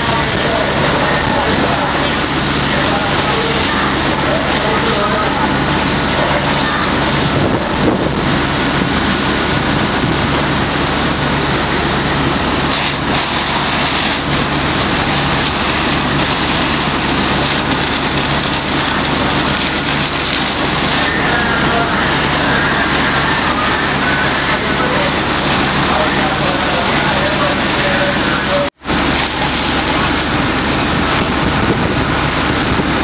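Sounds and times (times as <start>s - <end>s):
large vehicle engine humming: 0.0s - 33.0s
loud rushing noise: 0.0s - 33.0s.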